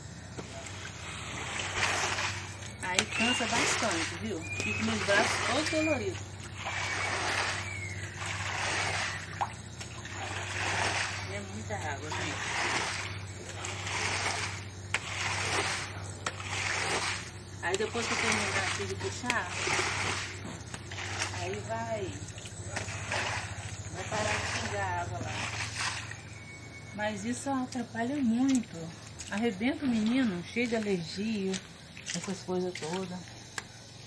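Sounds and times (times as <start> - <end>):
squeegee swishing water on concrete: 0.2 - 33.9.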